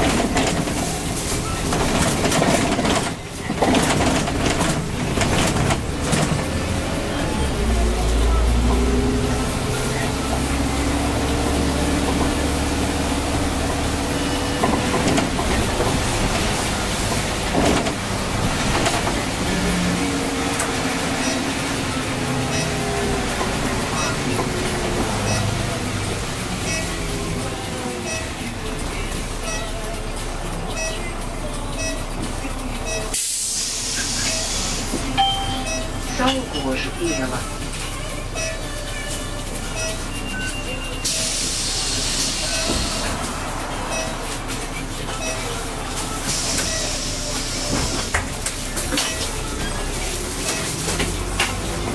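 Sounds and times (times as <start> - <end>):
bus drive whine: 0.0 - 51.9
road rumble: 0.0 - 51.9.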